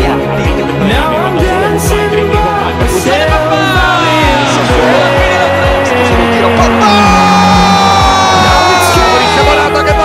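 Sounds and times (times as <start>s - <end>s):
pop music with kick-drum beat: 0.0s - 10.0s.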